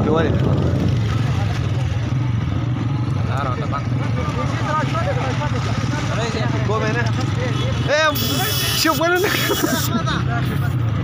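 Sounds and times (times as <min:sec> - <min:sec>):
crowd of men talking: 0:00.0 - 0:11.0
vehicle engine rumbling: 0:00.0 - 0:11.0.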